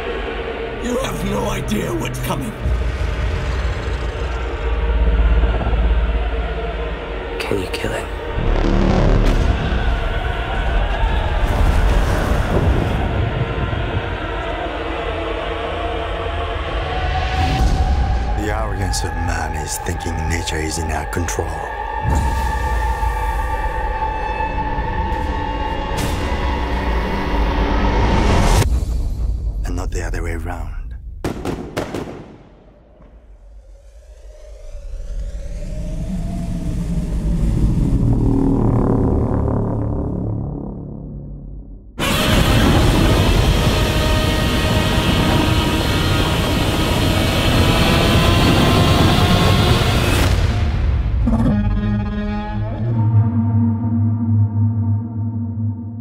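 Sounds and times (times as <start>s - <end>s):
heavy low rumble: 0.0s - 19.6s, 26.5s - 56.0s
ominous sustained music tones: 33.4s - 56.0s.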